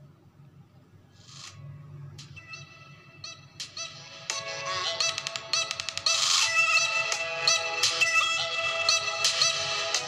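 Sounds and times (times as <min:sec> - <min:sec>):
music from phone speaker: 0:02.2 - 0:10.0.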